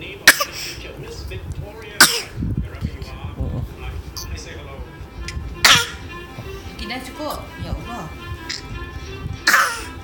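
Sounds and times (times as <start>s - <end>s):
toddler fake coughing: 0.2s - 0.6s, 2.0s - 2.4s, 5.6s - 6.0s, 9.4s - 10.0s.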